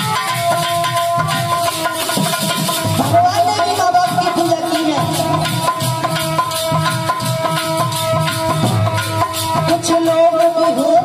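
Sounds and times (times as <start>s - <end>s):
hand drum beat: 0.0s - 11.0s
harmonium melody: 0.0s - 11.0s.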